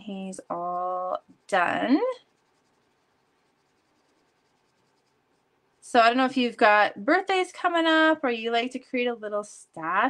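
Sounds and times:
marker scratching on paper: 0:00.0 - 0:05.6.

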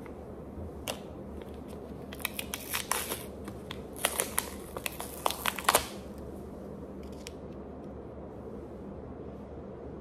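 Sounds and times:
plastic film crinkling: 0:01.6 - 0:06.1.

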